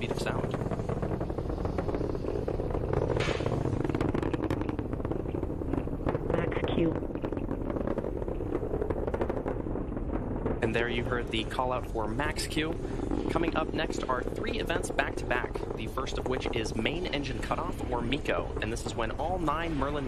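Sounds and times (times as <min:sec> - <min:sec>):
rocket engines rumbling and crackling: 0:00.0 - 0:20.0.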